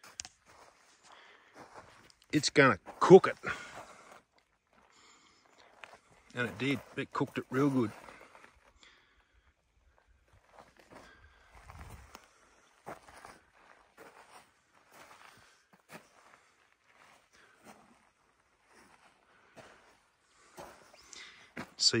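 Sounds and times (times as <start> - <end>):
faint footsteps on gravel: 0.0 - 22.0.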